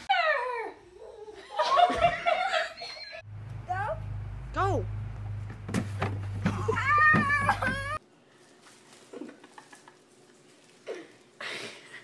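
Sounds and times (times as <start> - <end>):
girl wailing: 6.5 - 8.0.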